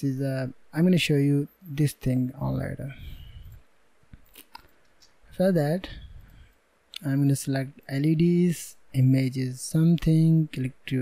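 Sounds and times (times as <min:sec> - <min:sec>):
low microphone hum: 0:00.0 - 0:11.0.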